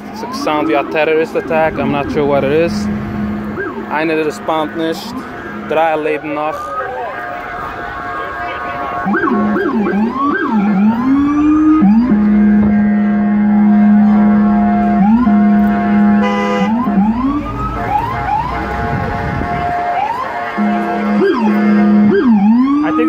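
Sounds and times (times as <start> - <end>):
emergency vehicle sirens: 0.0 - 23.0.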